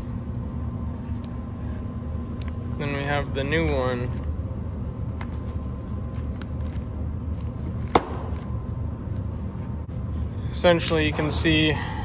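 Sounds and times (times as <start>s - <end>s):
low shop rumble: 0.0s - 12.0s.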